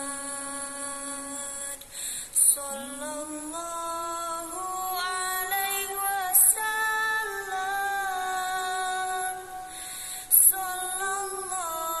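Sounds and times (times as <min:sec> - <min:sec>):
person singing a long note: 0:02.4 - 0:12.0.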